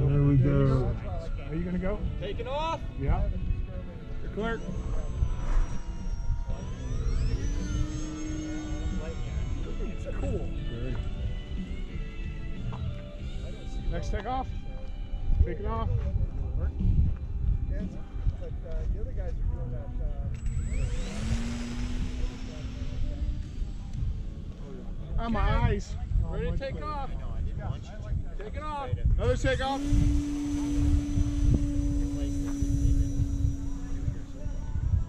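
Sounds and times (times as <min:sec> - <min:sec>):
low rumble: 0:00.0 - 0:12.9, 0:15.1 - 0:35.0
model airplane motor whine: 0:00.0 - 0:15.8, 0:20.3 - 0:27.0, 0:29.2 - 0:35.0
other model aircraft motors: 0:00.0 - 0:35.0.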